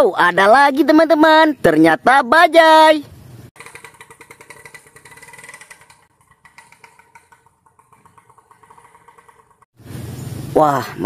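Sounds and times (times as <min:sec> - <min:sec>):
auto-rickshaw engine idling: 0:03.6 - 0:10.3.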